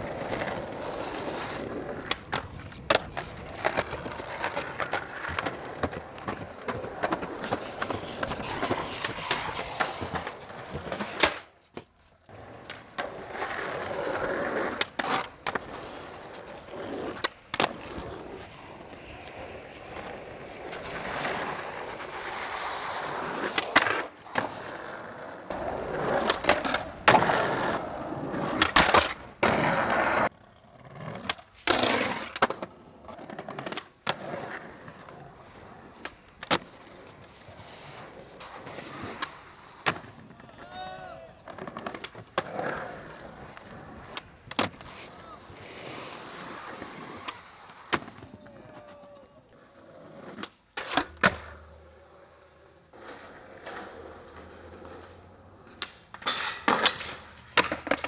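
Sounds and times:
skateboard slapping down: 0.0 - 52.0, 53.0 - 58.0
skateboard tail clacks: 0.0 - 58.0
skateboard wheels rolling on pavement: 0.0 - 58.0.

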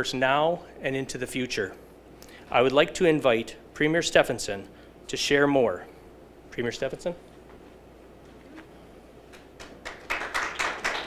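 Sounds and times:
audience applauding: 9.3 - 11.0.

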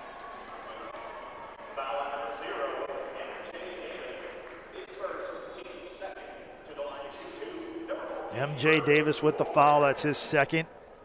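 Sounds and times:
indistinct voices in a gymnasium: 0.0 - 11.0.

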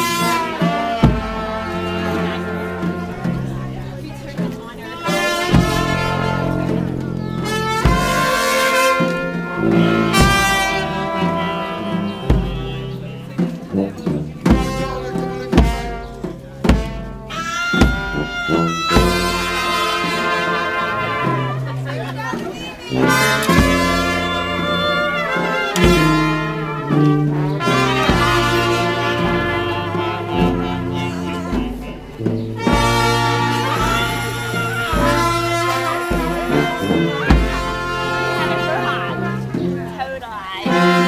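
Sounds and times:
bass drum beats: 0.0 - 20.4, 21.0 - 40.0
brass band playing a slow dirge: 0.0 - 41.0.

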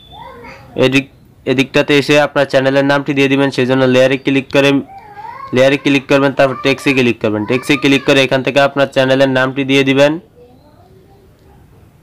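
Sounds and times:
person talking: 0.7 - 10.1.

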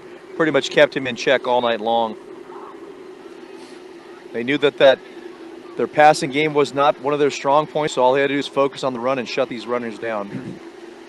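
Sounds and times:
steady low hum: 0.0 - 11.0
announcer speaking: 0.4 - 3.4, 4.0 - 10.3.

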